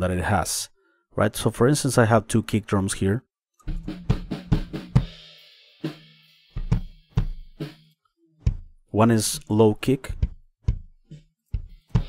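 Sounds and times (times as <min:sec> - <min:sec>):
kick drum hits: 0:06.6 - 0:07.4, 0:08.4 - 0:08.7, 0:10.1 - 0:11.0.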